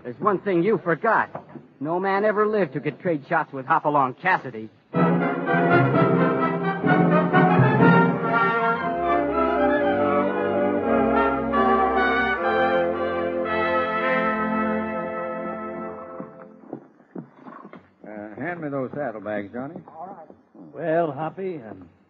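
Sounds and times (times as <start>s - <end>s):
orchestral brass chords: 4.9s - 16.6s.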